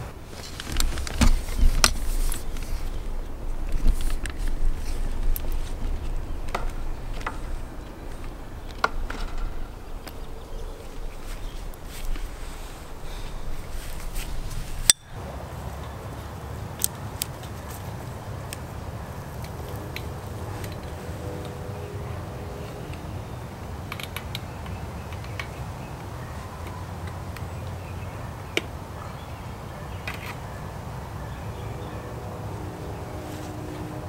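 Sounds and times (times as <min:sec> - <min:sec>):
low outdoor rumble: 0:00.0 - 0:29.7, 0:30.4 - 0:34.0.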